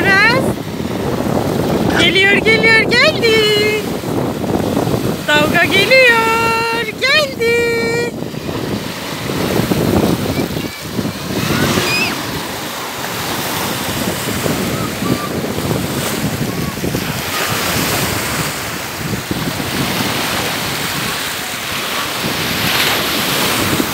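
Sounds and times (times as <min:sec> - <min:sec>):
waves washing over sand: 0:00.0 - 0:23.9
wind buffeting microphone: 0:00.0 - 0:23.9.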